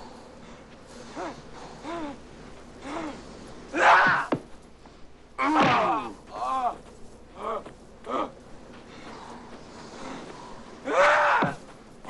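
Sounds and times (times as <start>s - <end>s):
men grunting and gasping: 0.9s - 4.4s
thwack of a blow: 5.5s - 6.0s
loud strained cry: 10.8s - 11.6s.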